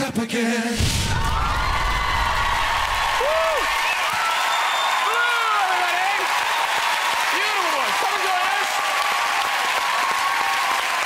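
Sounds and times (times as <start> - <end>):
audience applauding and cheering: 1.0 - 11.0
whoops: 1.1 - 6.8, 8.8 - 11.0.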